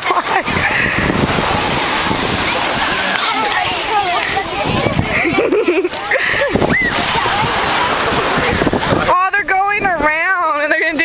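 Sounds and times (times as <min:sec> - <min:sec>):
children's voices: 0:00.0 - 0:10.1
wind rumbling on microphone: 0:00.0 - 0:10.5.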